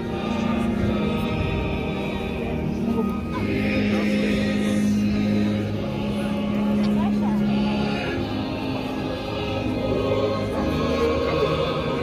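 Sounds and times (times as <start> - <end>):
choir singing: 0.0 - 12.0
held low notes: 0.0 - 12.0.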